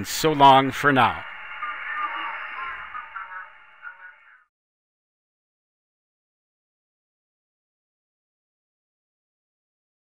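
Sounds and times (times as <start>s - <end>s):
faint radio tones: 0.0s - 4.5s
radio static hiss: 0.0s - 4.5s.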